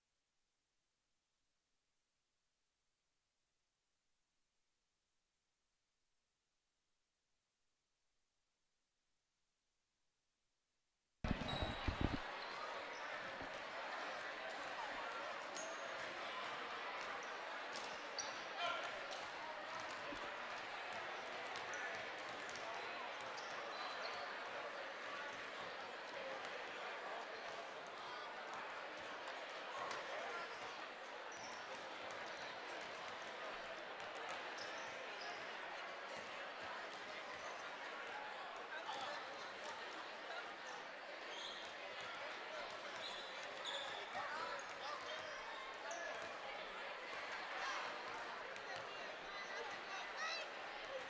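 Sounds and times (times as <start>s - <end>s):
high shoe squeaks: 11.3s - 12.2s
sneaker squeaks: 11.3s - 12.6s, 41.3s - 41.8s, 43.0s - 45.4s
murmur of crowd chatter: 11.3s - 51.0s.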